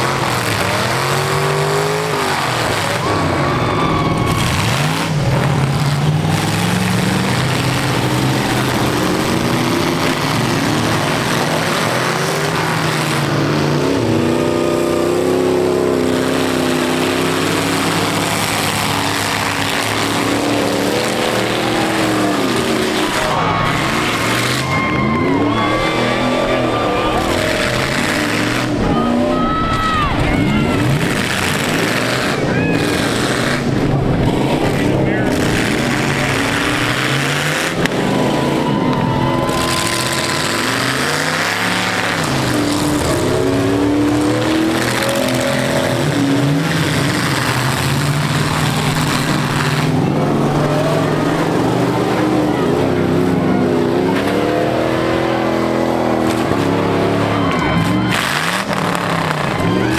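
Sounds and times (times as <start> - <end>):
steady noisy din: 0.0 - 59.9
truck engines revving: 0.0 - 59.9.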